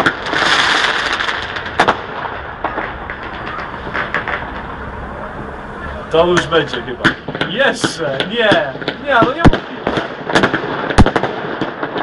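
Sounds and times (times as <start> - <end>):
firework bangs: 0.0 - 12.0
firework crackling and pops: 0.0 - 12.0.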